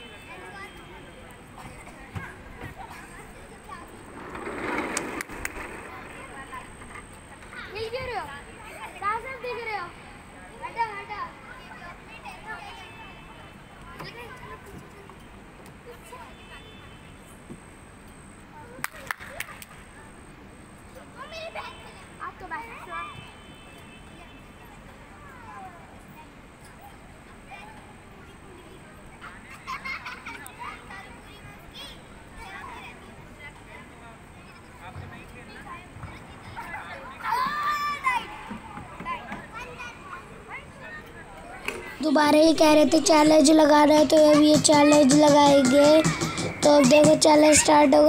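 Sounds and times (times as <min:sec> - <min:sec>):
outdoor background hiss: 0:00.0 - 0:48.0
children shouting and laughing: 0:24.8 - 0:34.9, 0:35.6 - 0:48.0
children shouting: 0:36.7 - 0:38.6.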